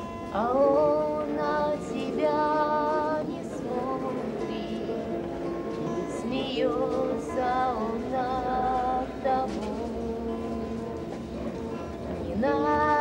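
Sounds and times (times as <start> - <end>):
instrumental accompaniment: 0.0 - 13.0
woman singing slow song: 0.3 - 5.0, 6.2 - 10.6, 12.2 - 13.0.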